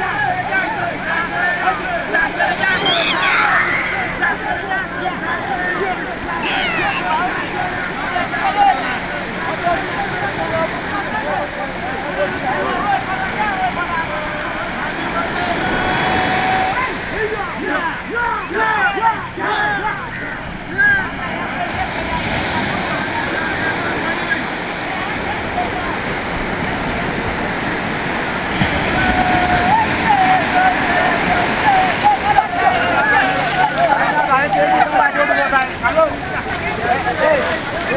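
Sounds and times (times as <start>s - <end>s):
men calling and talking: 0.0s - 37.9s
surf washing: 0.0s - 37.9s.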